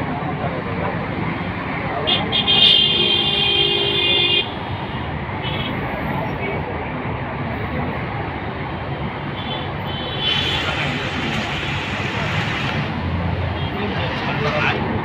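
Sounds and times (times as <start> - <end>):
vehicle road noise: 0.0 - 15.0.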